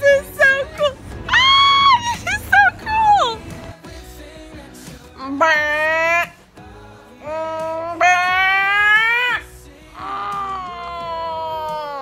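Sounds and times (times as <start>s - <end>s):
woman wailing: 0.5s - 3.4s, 7.2s - 9.4s, 10.0s - 12.0s.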